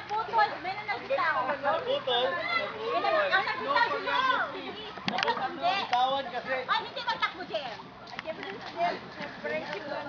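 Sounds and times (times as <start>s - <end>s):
children shouting at play: 2.1s - 5.0s.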